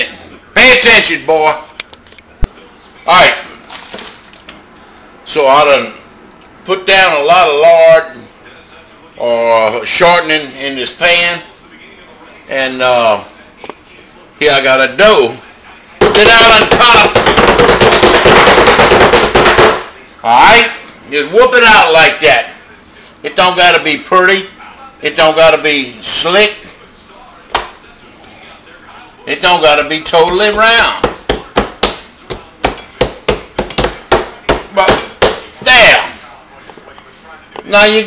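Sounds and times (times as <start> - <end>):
dough patted and slapped by hand: 16.0 - 19.9, 27.5 - 27.8, 30.2 - 35.5.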